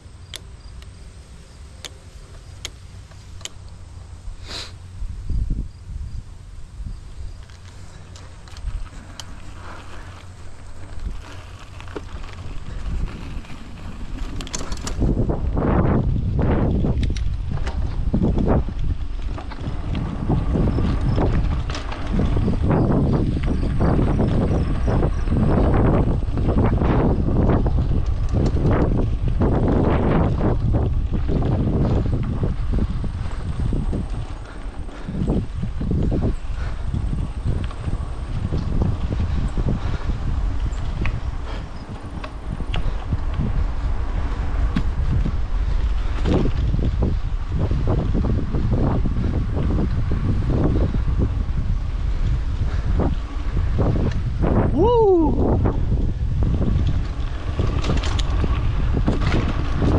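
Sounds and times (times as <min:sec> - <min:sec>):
rumble and rattle over rough ground: 0:00.0 - 0:59.9
wind buffeting microphone: 0:00.0 - 0:59.9
clicks: 0:01.8 - 0:03.8.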